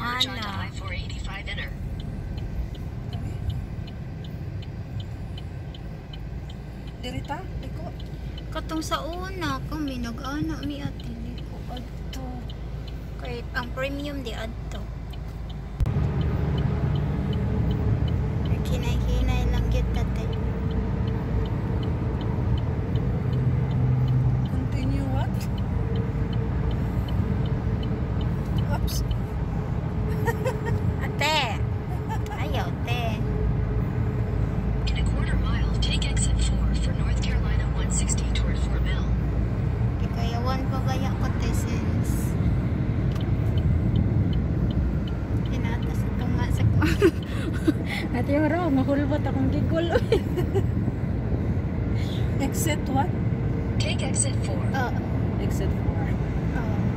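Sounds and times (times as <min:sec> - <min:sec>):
car road and engine rumble: 0:00.0 - 0:56.9.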